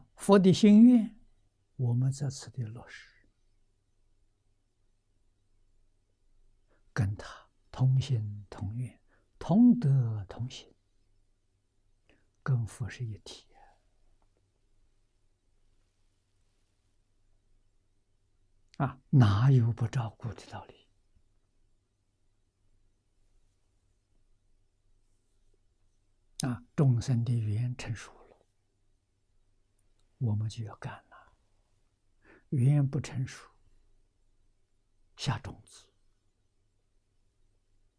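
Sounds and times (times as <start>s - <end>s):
man speaking: 0.0s - 1.2s, 1.8s - 3.2s, 7.0s - 10.7s, 12.4s - 13.7s, 18.7s - 20.9s, 26.4s - 28.4s, 30.2s - 31.3s, 32.3s - 33.6s, 35.2s - 35.9s.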